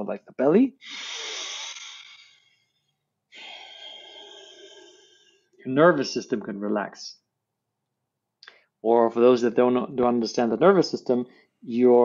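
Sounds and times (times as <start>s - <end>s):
man breathing in through nose: 0.8s - 5.6s
man breathing out: 0.8s - 5.6s.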